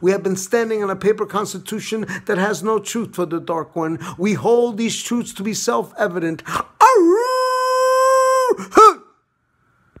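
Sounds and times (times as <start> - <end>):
short vocal cry: 6.6 - 9.2.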